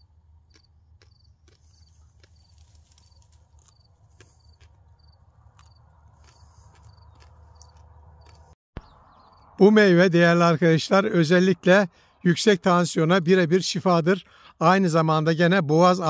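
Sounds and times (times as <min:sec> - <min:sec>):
cricket chirping: 0:00.0 - 0:08.6.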